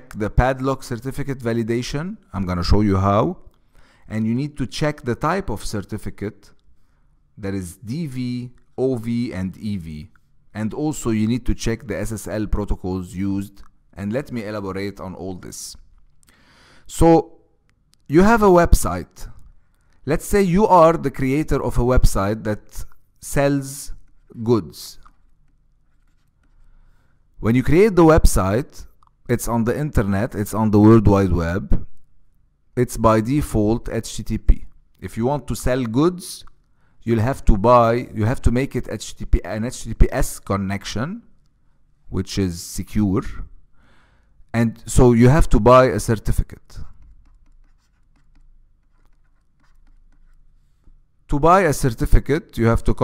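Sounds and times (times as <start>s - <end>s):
stylus scratching on tablet: 23.3s - 26.7s, 46.8s - 51.0s
pen writing on paper: 46.9s - 50.8s.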